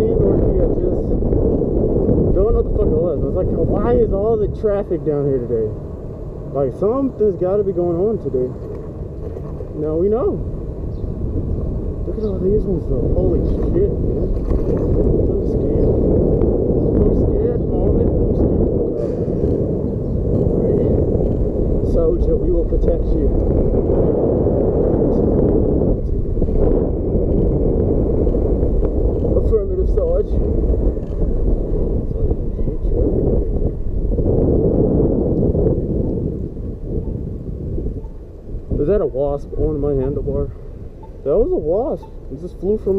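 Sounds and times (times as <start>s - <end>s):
wind buffeting microphone: 0.0s - 42.9s.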